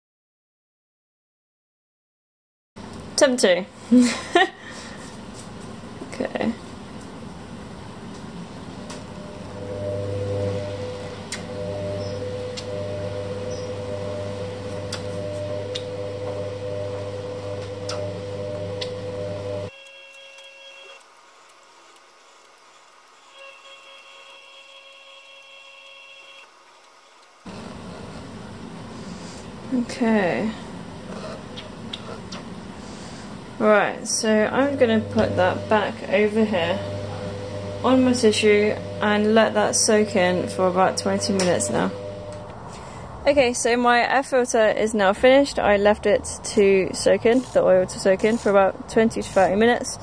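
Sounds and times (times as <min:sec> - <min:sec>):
machine hum: 0:02.8 - 0:50.0.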